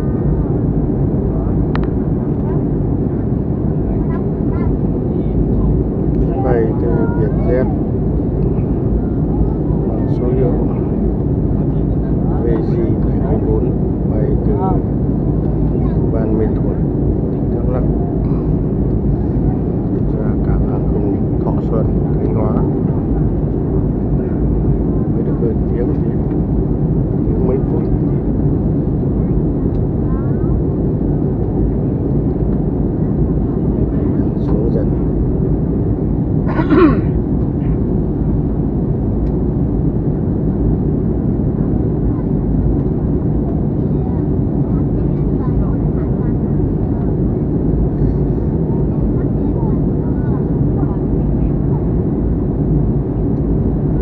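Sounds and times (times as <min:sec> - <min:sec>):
jet engine cabin drone: 0:00.0 - 0:54.0.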